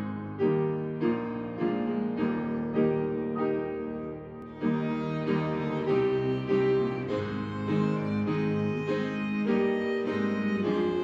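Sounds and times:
piano chords: 0.0s - 11.0s.

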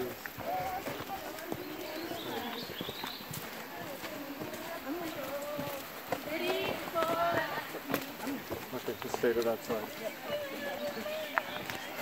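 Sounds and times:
footsteps on dirt and stone trail: 0.0s - 12.0s
indistinct voices talking: 0.0s - 12.0s.

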